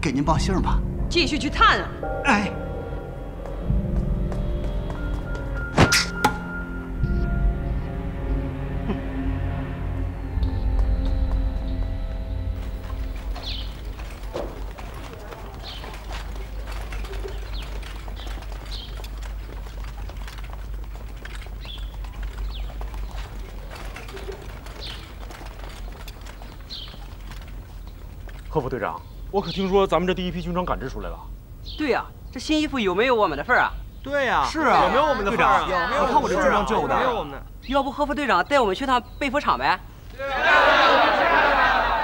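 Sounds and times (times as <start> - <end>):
tense drama music: 0.0 - 28.5
footsteps on stone paving: 3.1 - 7.4, 10.2 - 31.0
bird chirps: 12.6 - 14.2, 25.8 - 28.0.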